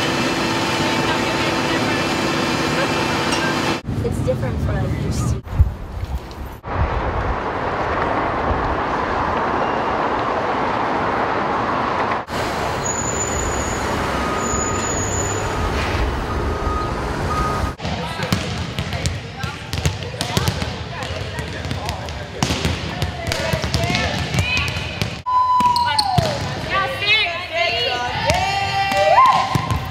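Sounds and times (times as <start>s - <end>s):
city street traffic: 0.0s - 25.3s
volleyballs hit and bouncing: 17.8s - 27.0s, 28.2s - 29.9s
players' voices: 17.8s - 29.9s.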